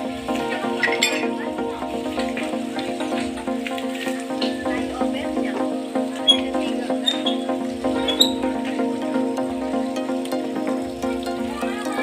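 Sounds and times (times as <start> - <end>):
background music with sustained chords: 0.0 - 12.0.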